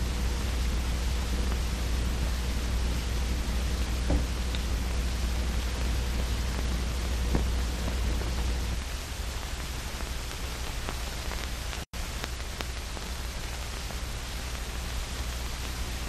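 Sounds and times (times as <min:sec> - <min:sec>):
film soundtrack hiss and hum: 0:00.0 - 0:16.0
faint clicks: 0:04.5 - 0:04.8, 0:10.0 - 0:14.6.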